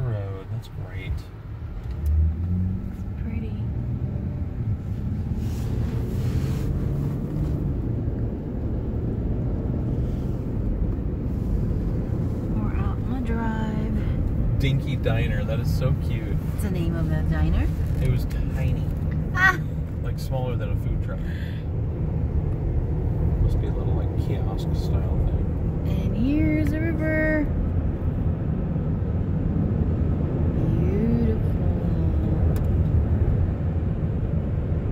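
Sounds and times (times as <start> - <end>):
van engine and road rumble: 0.0 - 34.9.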